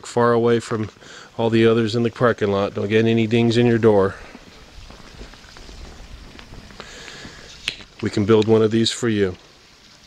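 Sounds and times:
footsteps on concrete: 0:03.5 - 0:08.2.

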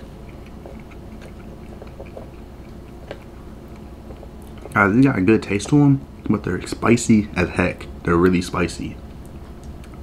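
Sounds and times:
person chewing noodles: 0:00.0 - 0:06.8
low room hum: 0:00.0 - 0:10.0.

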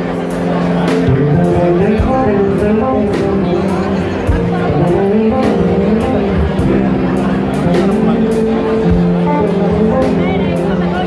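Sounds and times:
drum kit: 0:00.0 - 0:11.0
electric guitars: 0:00.0 - 0:11.0.

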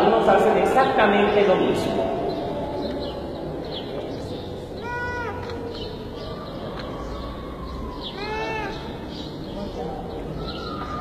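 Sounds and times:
murmur of crowd: 0:00.0 - 0:11.0
baby crying: 0:04.8 - 0:05.6, 0:08.1 - 0:09.0.

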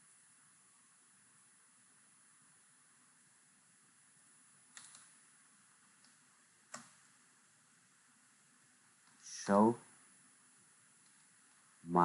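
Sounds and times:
keyboard keystrokes: 0:04.7 - 0:05.1.

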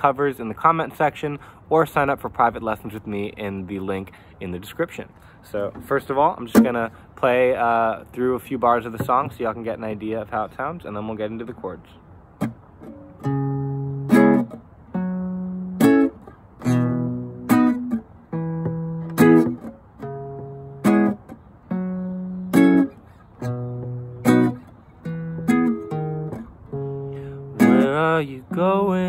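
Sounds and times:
acoustic guitar chords: 0:12.2 - 0:29.0.

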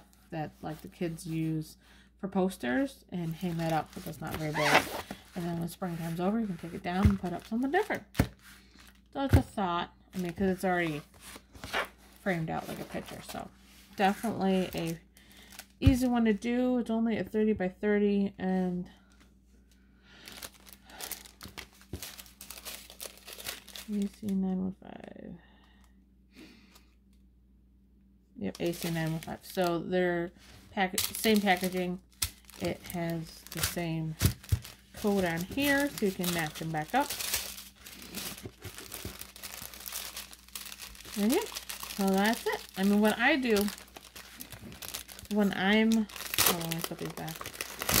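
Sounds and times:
small plastic bags crinkling: 0:03.3 - 0:09.1, 0:10.2 - 0:16.1, 0:20.2 - 0:24.4, 0:28.5 - 0:29.8, 0:30.8 - 0:48.0.

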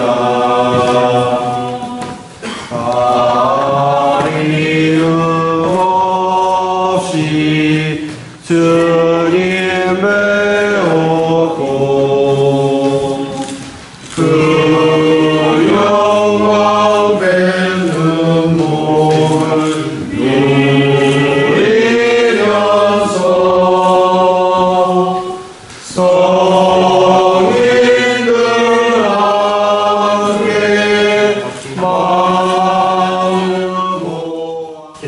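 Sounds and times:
congregation singing a hymn: 0:00.0 - 0:35.0.

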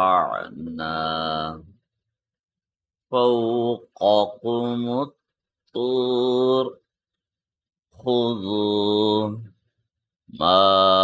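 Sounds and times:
man reciting melodically: 0:00.0 - 0:01.9, 0:03.1 - 0:07.0, 0:07.9 - 0:11.0.

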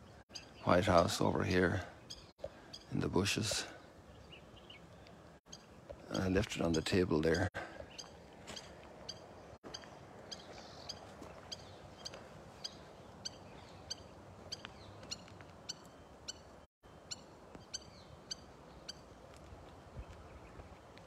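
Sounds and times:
bird chirping: 0:00.0 - 0:19.3
faint outdoor background noise: 0:00.0 - 0:21.0.

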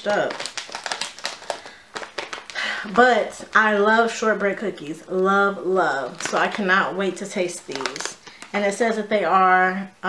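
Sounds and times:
plastic bag crinkling: 0:00.0 - 0:08.8.

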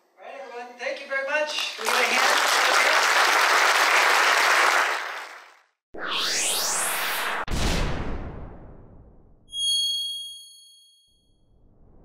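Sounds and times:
rising whoosh: 0:06.0 - 0:09.2
bell-like ding: 0:09.5 - 0:11.3.

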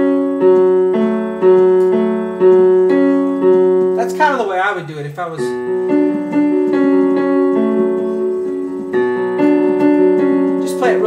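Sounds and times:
slow piano notes: 0:00.0 - 0:11.0.

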